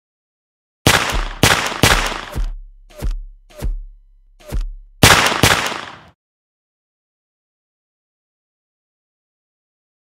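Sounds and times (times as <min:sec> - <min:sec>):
gunshots with short ring: 0:00.9 - 0:03.8, 0:04.4 - 0:06.1.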